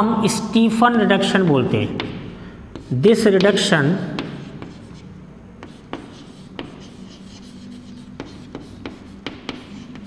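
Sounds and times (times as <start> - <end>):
chalk tapping on blackboard: 2.0 - 10.0
chalk scratching on blackboard: 2.7 - 10.0.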